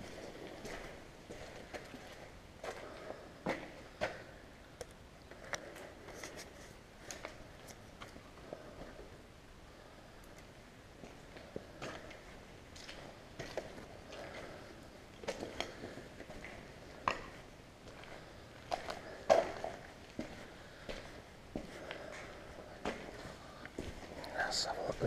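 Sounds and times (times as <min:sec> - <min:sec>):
footsteps crunching on grit: 0:00.0 - 0:04.2, 0:11.0 - 0:25.0.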